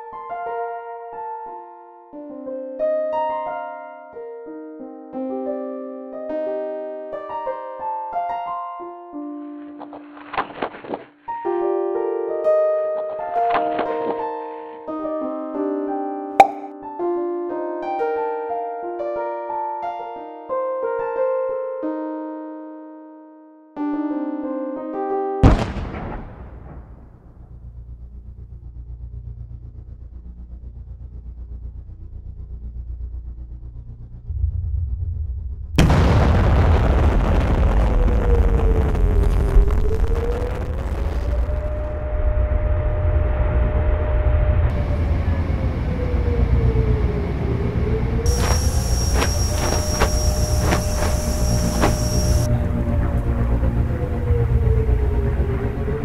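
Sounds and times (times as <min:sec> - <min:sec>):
light keyboard music: 0:16.4 - 0:17.0
wailing air-raid siren: 0:44.7 - 0:56.0.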